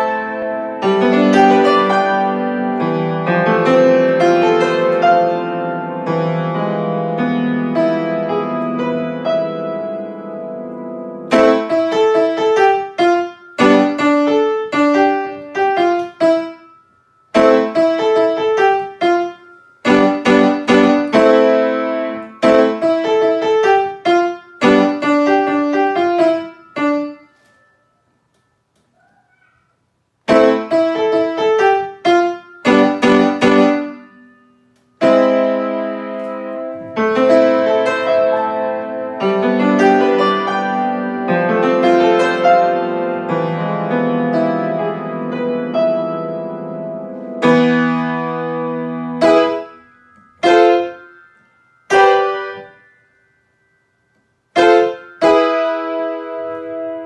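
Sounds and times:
grand piano tune: 0:00.0 - 0:57.0.

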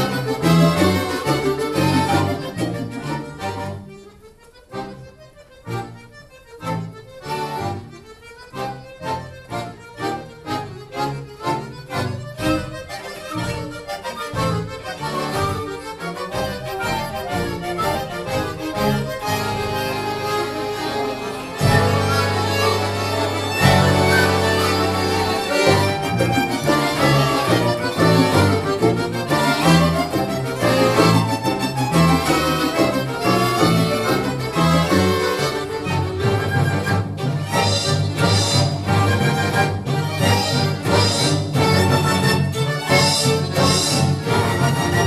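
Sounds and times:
accordion orchestra with strings: 0:00.0 - 0:45.0.

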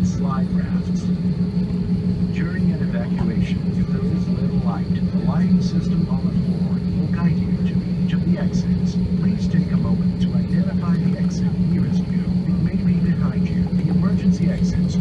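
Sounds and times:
recorded announcement voice: 0:00.0 - 0:01.3, 0:02.3 - 0:15.0
aircraft cabin drone: 0:00.0 - 0:15.0.

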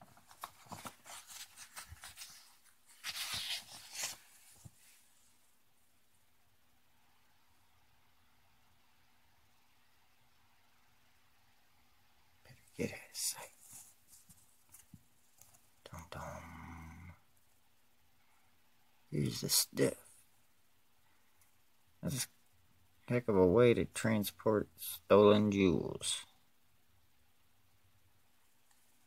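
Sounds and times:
paper pages rustling: 0:00.0 - 0:05.1, 0:13.5 - 0:15.8.

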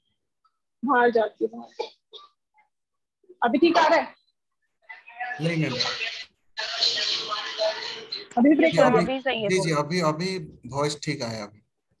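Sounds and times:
choppy voice over video call: 0:00.9 - 0:12.0.

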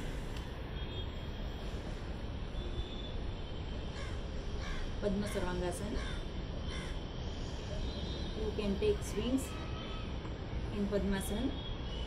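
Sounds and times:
crow cawing: 0:04.0 - 0:04.9, 0:06.0 - 0:07.0.

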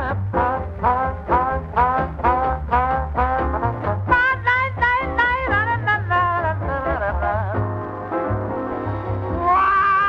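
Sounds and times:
bass line: 0:00.0 - 0:10.0
jazz band playing: 0:00.0 - 0:10.0.

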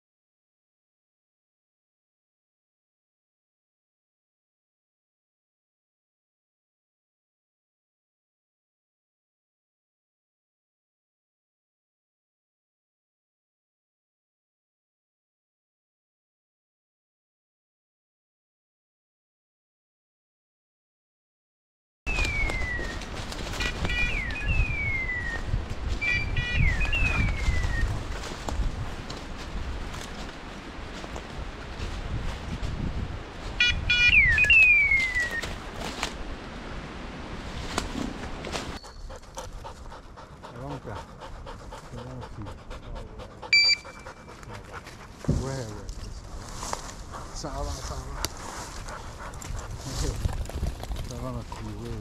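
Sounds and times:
rustling through dry leaves: 0:22.1 - 0:24.4, 0:26.7 - 0:33.5, 0:34.5 - 0:38.8, 0:45.2 - 0:52.0
short beep: 0:33.6 - 0:34.7, 0:43.5 - 0:44.1
electronic beeper collar chirps: 0:33.6 - 0:35.1, 0:43.5 - 0:44.0
dogs panting: 0:38.8 - 0:45.8, 0:46.8 - 0:52.0.

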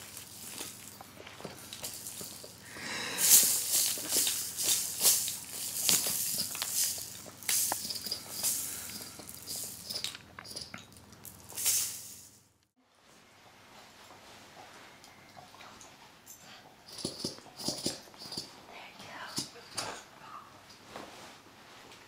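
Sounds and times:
baby rattle toy shaking: 0:01.6 - 0:02.6, 0:03.2 - 0:10.7, 0:11.3 - 0:12.3.

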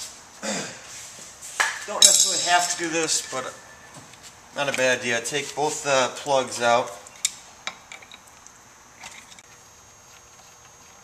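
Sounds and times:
man speaking: 0:01.9 - 0:03.6, 0:04.6 - 0:07.0.

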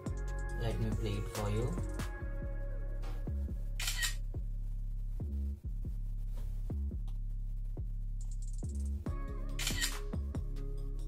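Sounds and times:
electronic music with kick drum: 0:00.0 - 0:11.0
camera shutter click: 0:03.8 - 0:04.2, 0:09.6 - 0:10.0.

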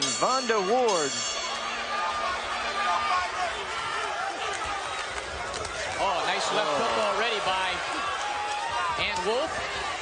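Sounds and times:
arena background noise: 0:00.1 - 0:10.0.

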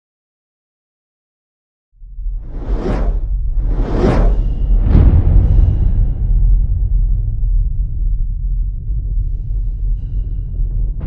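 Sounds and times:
deep rumbling drone: 0:02.0 - 0:11.0.

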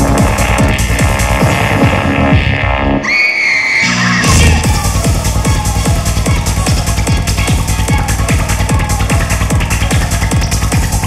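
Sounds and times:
kick drum and rolling bass: 0:00.0 - 0:03.0, 0:04.0 - 0:11.0.

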